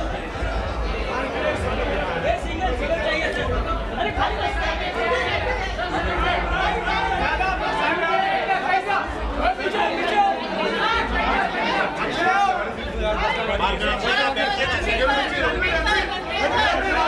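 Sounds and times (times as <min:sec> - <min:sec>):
overlapping chatter: 0:00.0 - 0:17.0.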